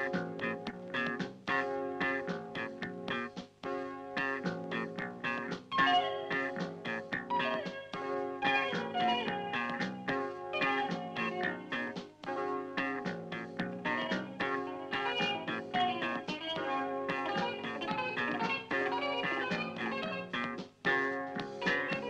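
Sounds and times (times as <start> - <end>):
plucked string instrumental music: 4.2 - 22.0.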